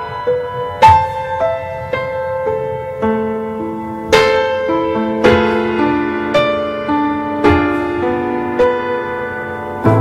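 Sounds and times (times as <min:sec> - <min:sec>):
slow piano melody: 0:00.0 - 0:10.0.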